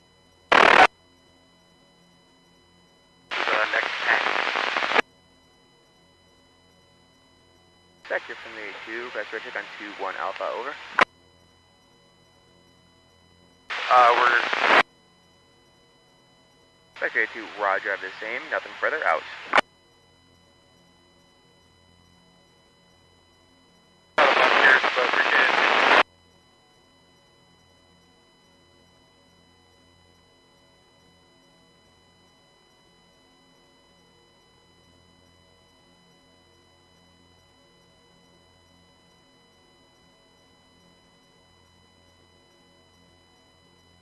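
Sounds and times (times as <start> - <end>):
radio static burst: 0.5 - 0.9, 3.3 - 5.0, 8.1 - 11.0, 13.7 - 14.8, 17.0 - 19.6, 24.2 - 26.0
garbled radio voice: 3.3 - 5.0, 8.1 - 11.0, 13.7 - 14.8, 17.0 - 19.6, 24.2 - 26.0.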